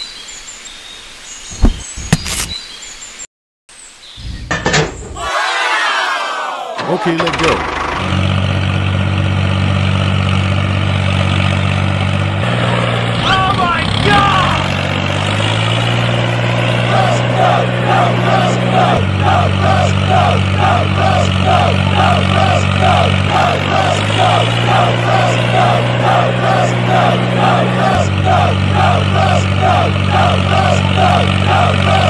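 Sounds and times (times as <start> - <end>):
tractor engine labouring: 6.7 - 32.0.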